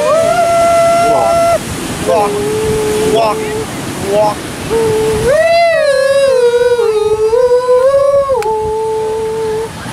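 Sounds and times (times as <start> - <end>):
person singing high held note: 0.0 - 9.7.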